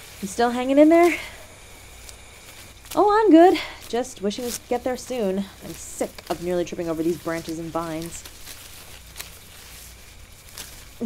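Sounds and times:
footsteps rustling through undergrowth: 0:00.0 - 0:11.0.

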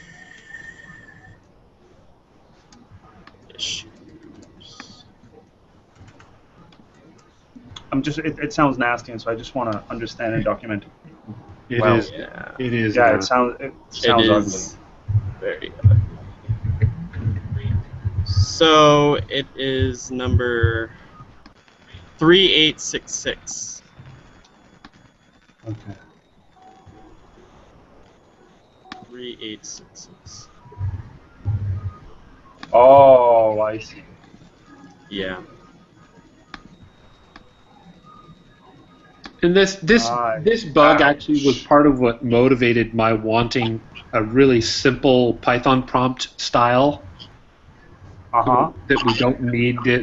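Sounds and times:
low background noise: 0:00.0 - 0:50.0
faint voice: 0:02.9 - 0:05.4, 0:06.9 - 0:21.2, 0:21.9 - 0:23.8, 0:25.7 - 0:26.1, 0:28.9 - 0:34.0, 0:34.8 - 0:35.7, 0:39.3 - 0:47.3, 0:48.3 - 0:50.0
person speaking: 0:03.1 - 0:05.2, 0:07.0 - 0:21.0, 0:22.0 - 0:23.8, 0:25.7 - 0:26.0, 0:28.9 - 0:32.0, 0:32.6 - 0:34.0, 0:35.1 - 0:35.5, 0:39.4 - 0:47.3, 0:48.4 - 0:50.0.

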